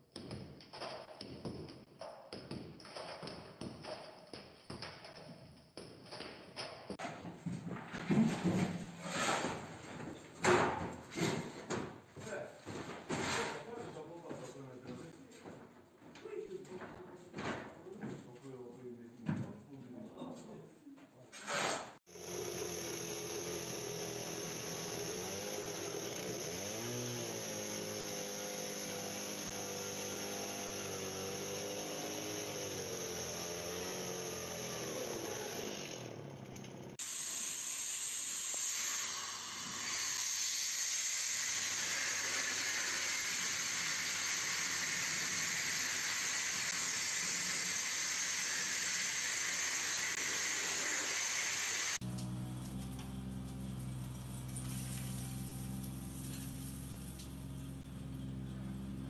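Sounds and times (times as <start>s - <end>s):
masonry saw cutting brick: 21.4s - 52.2s
sandblaster hissing: 22.1s - 36.0s, 37.0s - 52.0s.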